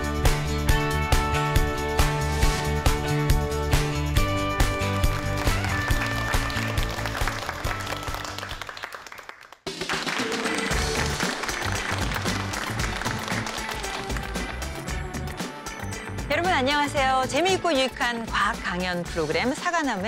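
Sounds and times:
upbeat music: 0:00.0 - 0:08.7, 0:09.7 - 0:20.0
studio audience applauding: 0:03.8 - 0:16.1.

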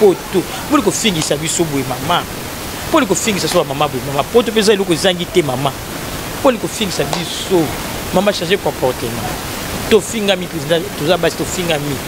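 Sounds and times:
person talking: 0:00.0 - 0:05.8, 0:06.4 - 0:12.0
steady background hiss: 0:00.0 - 0:12.0.

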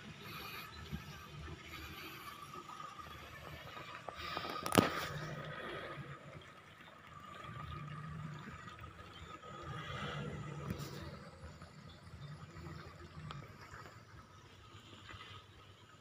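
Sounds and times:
steady high whine: 0:00.0 - 0:15.9
pickup truck engine revving: 0:07.2 - 0:13.9.

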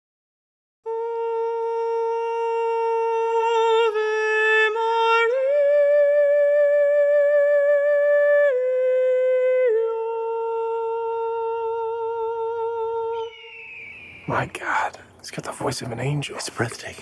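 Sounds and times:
person singing with vibrato: 0:00.8 - 0:14.9.

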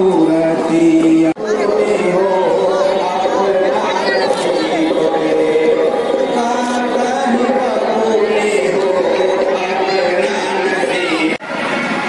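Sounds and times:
many voices talking: 0:00.0 - 0:12.0.

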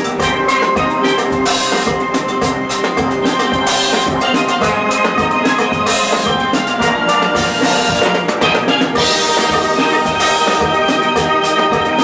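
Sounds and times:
drum strokes: 0:00.0 - 0:12.0
steel pans playing melody: 0:00.0 - 0:12.0.

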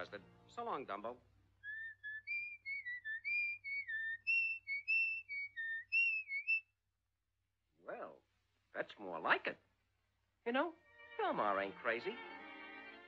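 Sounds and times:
person whistling: 0:01.7 - 0:06.6.

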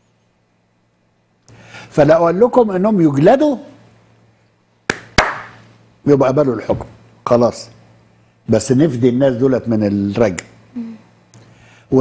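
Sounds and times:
sharp hand slaps: 0:04.9 - 0:05.6.

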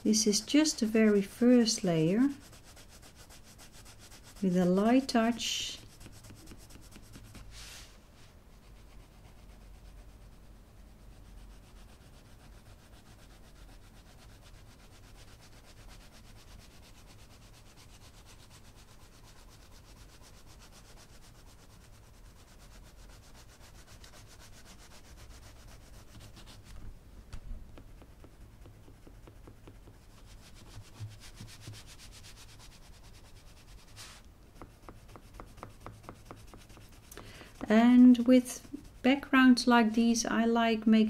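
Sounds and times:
coloured pencil scratching on paper: 0:00.0 - 0:07.9, 0:08.6 - 0:26.8, 0:27.7 - 0:39.7.

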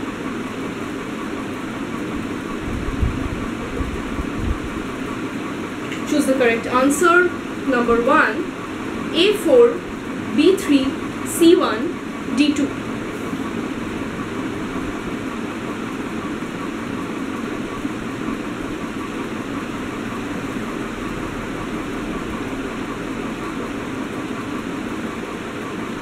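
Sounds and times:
low hum and hiss: 0:00.0 - 0:26.0.

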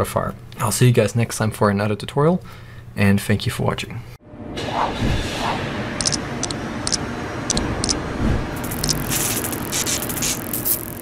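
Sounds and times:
low rumble: 0:04.3 - 0:10.6
whooshes: 0:04.4 - 0:11.0.

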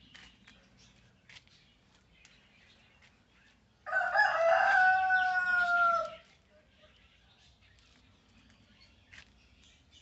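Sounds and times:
rooster crowing: 0:03.9 - 0:06.2.

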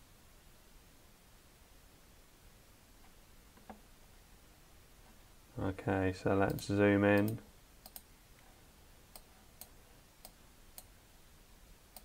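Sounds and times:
faint computer mouse clicks: 0:06.5 - 0:08.1, 0:09.1 - 0:10.9.

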